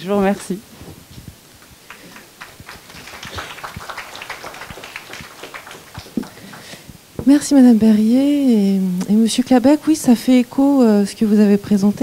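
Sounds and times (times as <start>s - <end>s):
scattered applause: 1.8s - 6.9s.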